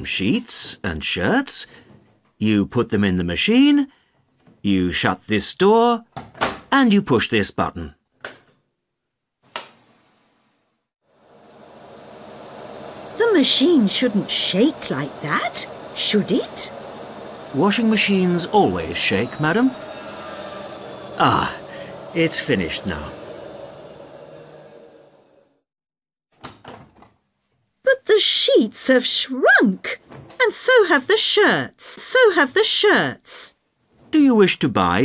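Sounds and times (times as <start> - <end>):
washing machine running: 11.1 - 25.7.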